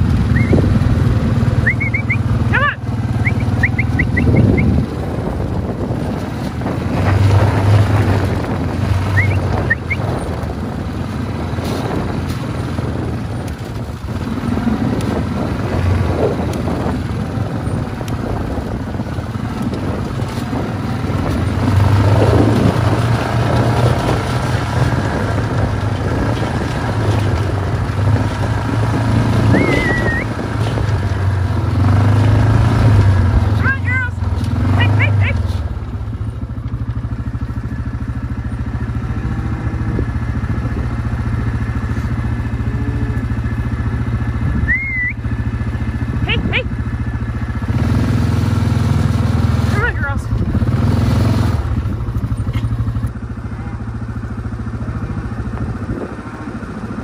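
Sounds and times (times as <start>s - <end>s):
wind buffeting microphone: 0.0s - 57.0s
short high whistles: 0.3s - 0.6s, 1.6s - 2.3s, 3.2s - 4.7s, 9.1s - 10.0s, 29.5s - 30.3s, 44.6s - 45.3s
cows mooing: 39.0s - 40.5s, 42.0s - 43.7s, 53.4s - 53.9s, 54.8s - 56.5s.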